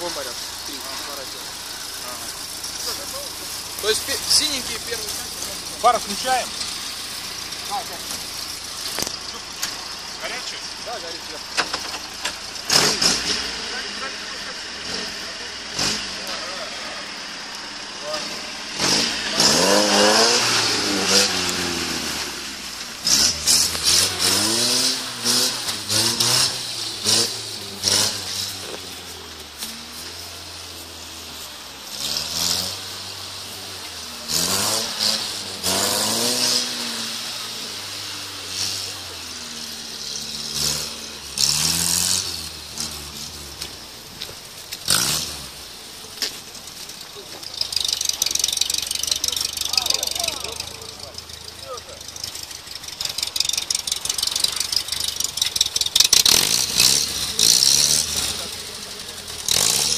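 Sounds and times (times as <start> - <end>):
off-road engine revving: 0.0 - 59.9
sharp knocks and clatters: 11.5 - 13.2.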